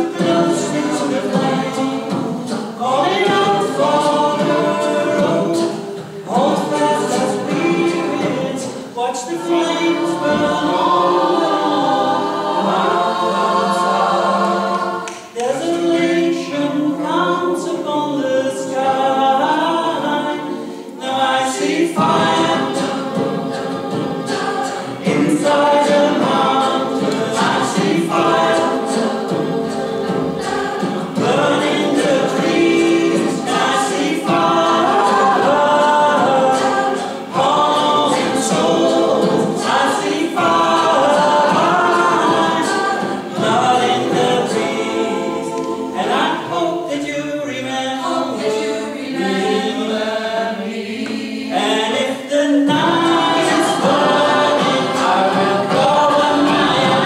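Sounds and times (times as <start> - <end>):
mixed choir singing a cappella: 0.0 - 57.0.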